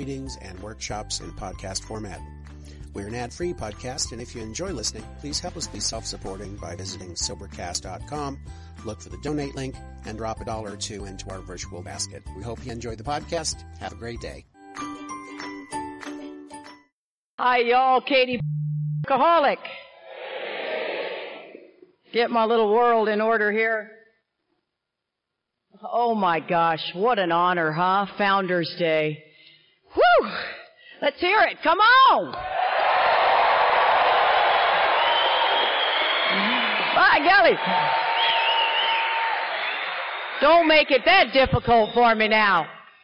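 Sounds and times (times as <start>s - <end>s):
audience applauding and cheering: 32.4s - 41.5s.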